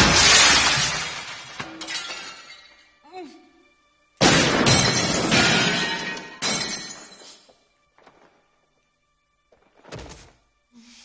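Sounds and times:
mirror glass shattering: 0.0s - 2.8s, 4.2s - 7.4s
tinkles of falling glass: 0.0s - 2.9s.

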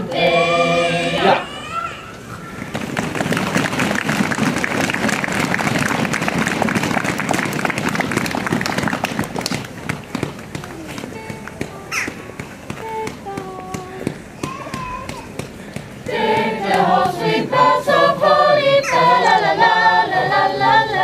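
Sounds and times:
audience applauding: 2.6s - 11.5s
voices murmuring: 10.6s - 21.0s.

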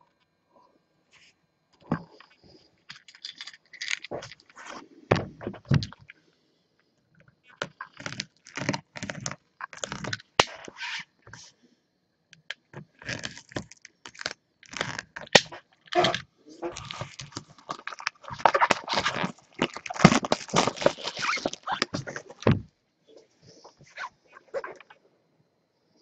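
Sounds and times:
plastic wrapping crinkling and tearing: 13.0s - 22.5s.

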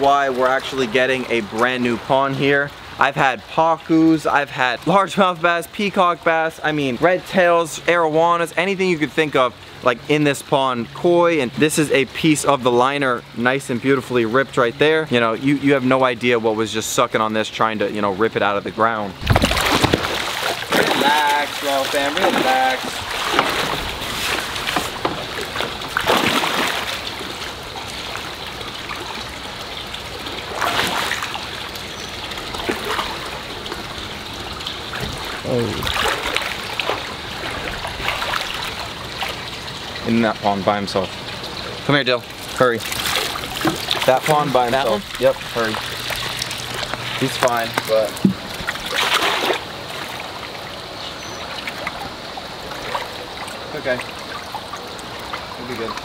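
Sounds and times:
pond water splashing: 0.0s - 17.6s, 19.1s - 56.0s
running water: 0.0s - 56.0s
net splashing into water: 19.2s - 29.2s, 30.2s - 31.8s, 32.5s - 33.4s, 35.2s - 39.4s, 42.6s - 50.3s.

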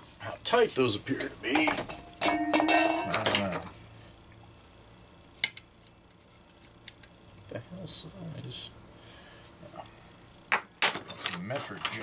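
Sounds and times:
metal tool clinking on workbench: 1.5s - 3.8s, 10.8s - 12.0s.

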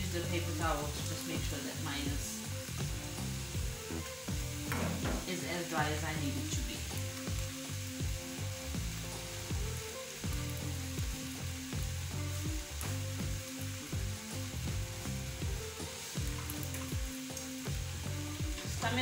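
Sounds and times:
meat sizzling in a pan: 0.0s - 19.0s.

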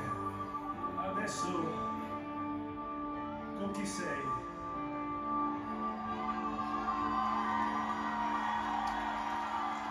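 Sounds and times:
electric guitar: 0.0s - 9.9s.

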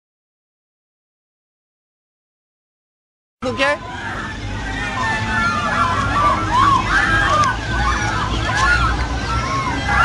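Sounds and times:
birds chirping: 3.4s - 10.0s
low outdoor rumble: 3.4s - 10.0s.

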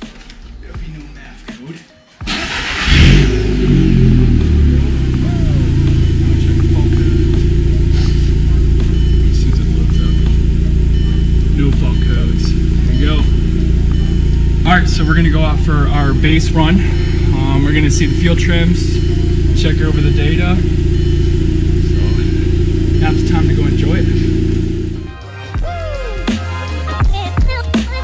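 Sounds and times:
car engine cranking and idling: 2.2s - 25.1s.

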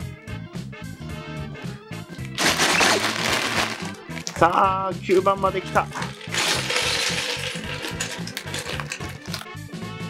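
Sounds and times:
background music: 0.0s - 10.0s
plastic bag crinkling: 2.2s - 4.6s, 5.8s - 9.5s.

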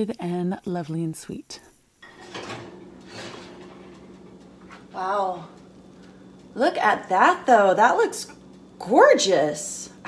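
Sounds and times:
steady low hum: 1.4s - 10.0s.

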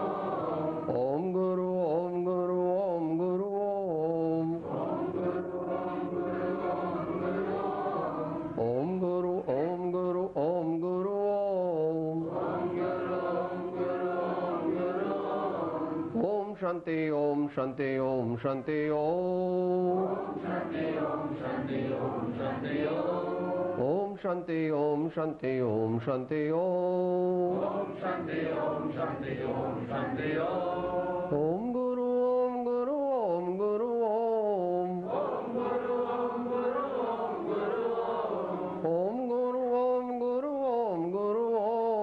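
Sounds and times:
congregation chanting together: 0.0s - 31.7s, 33.1s - 42.0s
person chanting: 0.0s - 42.0s
man chanting prayer: 8.6s - 12.3s, 16.1s - 20.0s.

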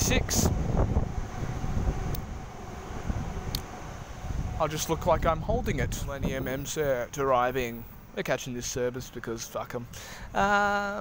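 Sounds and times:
electric train rumbling: 0.0s - 9.0s.

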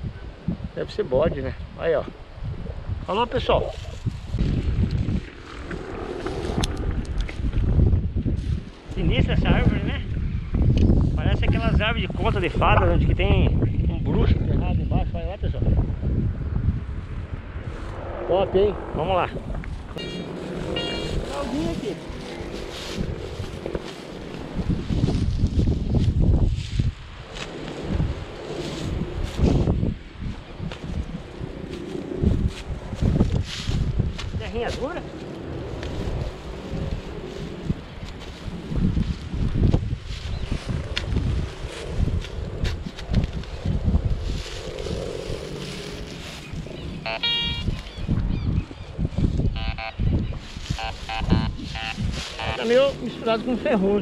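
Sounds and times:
wind rumble on microphone: 0.0s - 54.0s
rustling and scraping in grass: 3.6s - 9.8s, 17.0s - 18.2s, 19.8s - 48.0s, 50.4s - 54.0s
metal detector beeping: 19.9s - 22.6s, 47.0s - 48.0s, 49.5s - 52.9s.

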